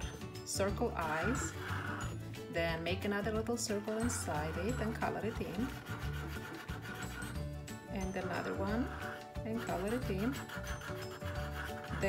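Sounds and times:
background music: 0:00.0 - 0:12.0
marker scribbling on paper: 0:01.0 - 0:02.1, 0:03.8 - 0:07.4, 0:08.0 - 0:12.0.

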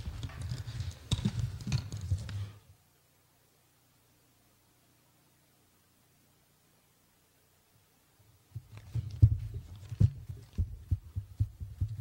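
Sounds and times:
thumps on wooden stage: 0:08.6 - 0:12.0.

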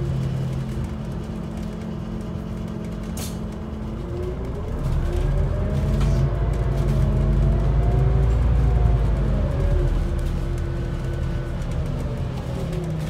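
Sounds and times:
bus diesel engine: 0:00.0 - 0:13.0.

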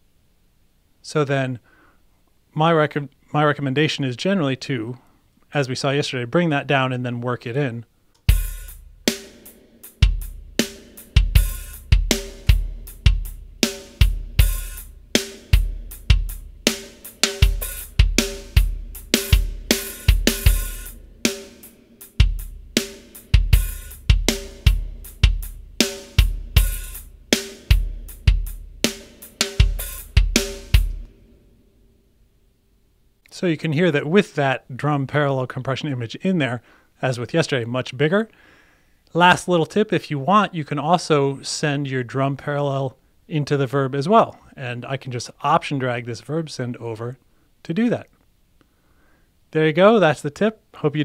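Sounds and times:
programmed drum loop: 0:08.2 - 0:31.4.

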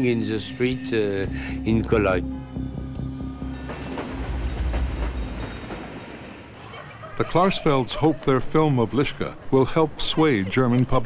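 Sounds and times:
streetcar rumbling on rails: 0:02.4 - 0:07.0.

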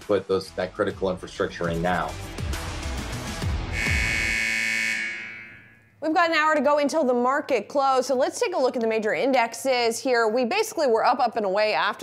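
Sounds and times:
held bright synth note: 0:03.8 - 0:05.8.

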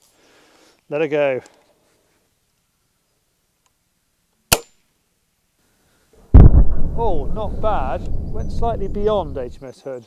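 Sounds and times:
low rushing noise: 0:06.2 - 0:09.6
person speaking: 0:07.0 - 0:09.6.

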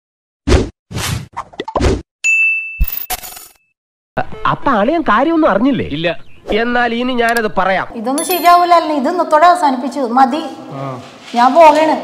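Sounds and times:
high ding: 0:02.2 - 0:03.0, 0:08.2 - 0:09.1.

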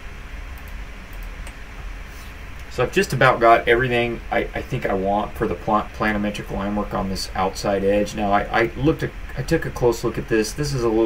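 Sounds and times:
low room hum: 0:00.0 - 0:11.0
computer mouse clicks: 0:00.5 - 0:01.6.

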